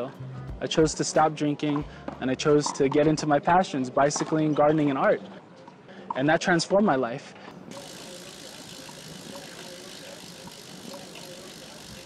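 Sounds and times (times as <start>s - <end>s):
bicycle wheel mechanical rattle: 7.7s - 12.0s
small ticks: 7.7s - 12.0s.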